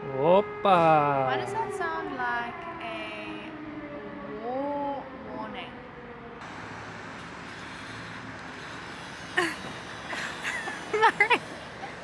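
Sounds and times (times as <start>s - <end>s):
outdoor street noise: 0.0s - 12.0s.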